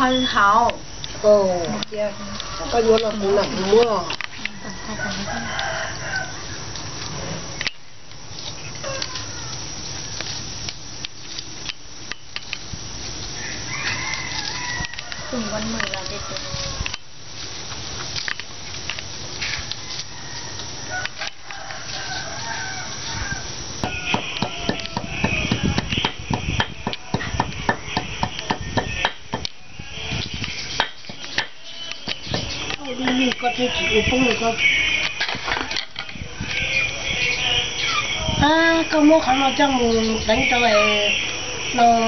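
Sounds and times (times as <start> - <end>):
fowl crowing call: 2.0 - 2.9, 3.9 - 7.4, 13.4 - 17.0, 19.4 - 26.2, 34.6 - 38.7
wavering animal call: 8.6 - 10.2, 33.4 - 42.0.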